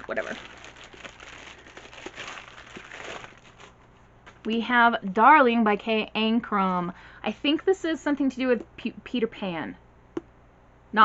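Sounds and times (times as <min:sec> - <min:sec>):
wrapping crinkling and rustling: 0:00.0 - 0:05.3.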